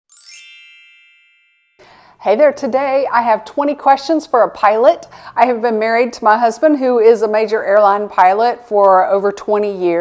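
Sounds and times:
bell-like chime: 0.1 - 2.2.

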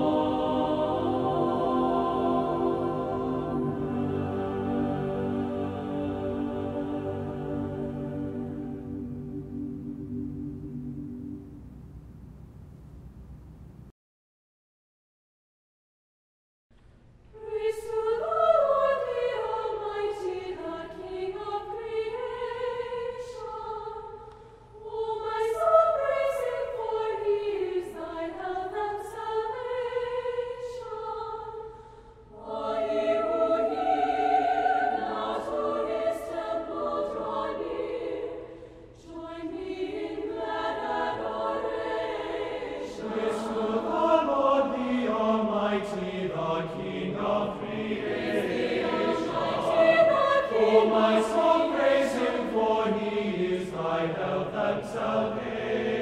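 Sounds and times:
choir singing: 0.0 - 12.3, 17.3 - 56.0.

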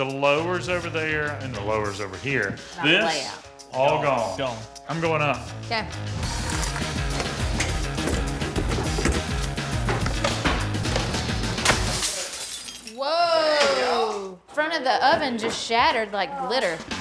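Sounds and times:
music with heavy bass beat: 6.3 - 11.6
glass shattering: 11.6 - 13.8.

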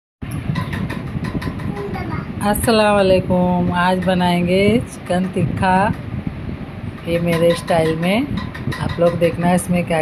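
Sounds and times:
steady rumbling noise: 0.2 - 10.0.

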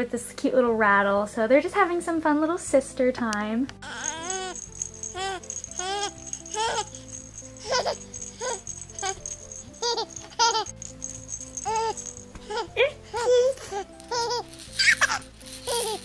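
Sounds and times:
background music: 0.0 - 16.0
toy rattle shaking: 3.8 - 16.0.

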